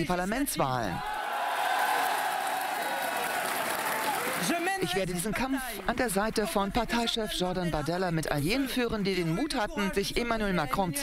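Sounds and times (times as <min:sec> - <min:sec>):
audience clapping: 0:01.0 - 0:07.9.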